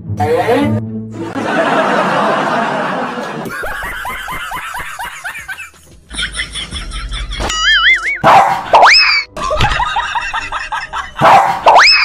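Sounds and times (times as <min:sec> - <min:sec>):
people laughing: 0:01.2 - 0:08.1, 0:09.4 - 0:11.3.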